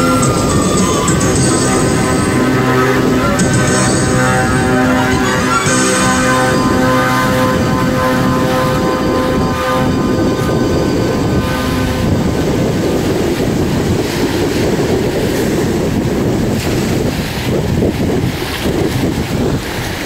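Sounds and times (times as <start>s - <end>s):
held music notes: 0.0s - 13.9s
gusty wind buffeting microphone: 0.0s - 20.0s.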